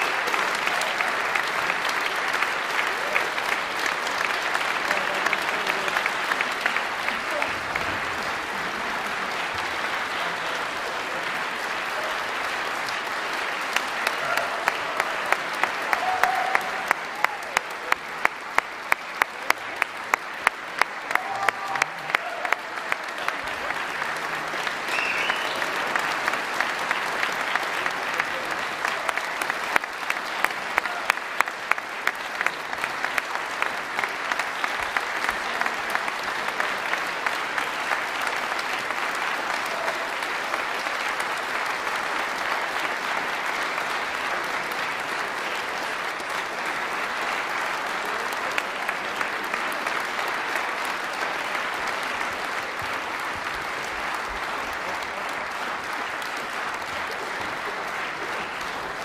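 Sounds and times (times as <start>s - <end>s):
audience applauding: 0.0s - 59.0s.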